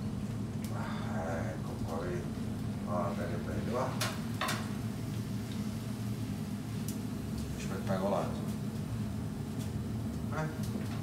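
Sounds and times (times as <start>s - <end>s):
oil sizzling in a fryer: 0.0s - 11.0s
steady low hum: 0.0s - 11.0s.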